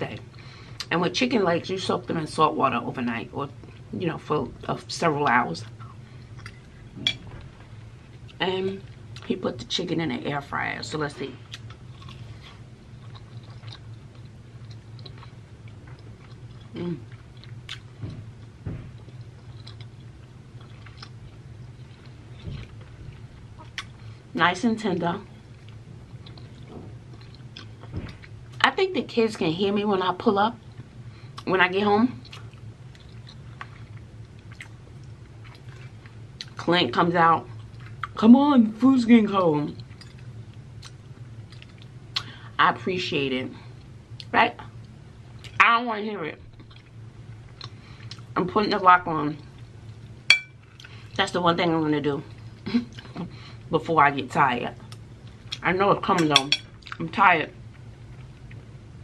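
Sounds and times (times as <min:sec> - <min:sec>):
low room hum: 0:00.0 - 0:59.0
person chewing: 0:11.4 - 0:24.0, 0:25.4 - 0:28.4, 0:32.2 - 0:36.6, 0:39.8 - 0:42.3, 0:46.6 - 0:48.3, 0:49.6 - 0:51.2.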